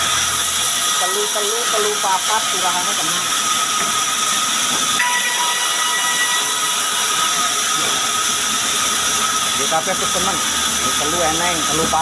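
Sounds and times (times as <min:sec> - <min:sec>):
band saw cutting log: 0:00.0 - 0:12.0.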